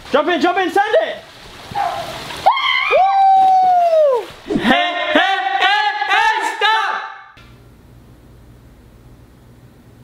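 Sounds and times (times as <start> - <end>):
water splash: 0.0 - 4.8.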